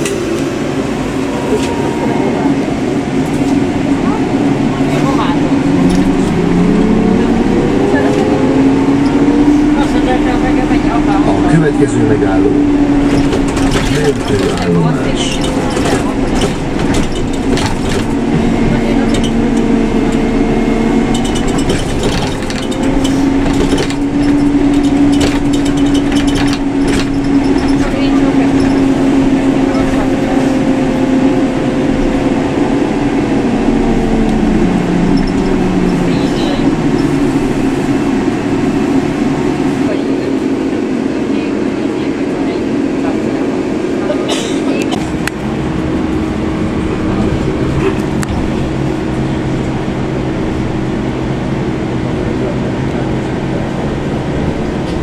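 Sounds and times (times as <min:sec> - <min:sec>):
tram running rumble: 0:00.0 - 0:55.0
whining traction motor: 0:00.0 - 0:55.0.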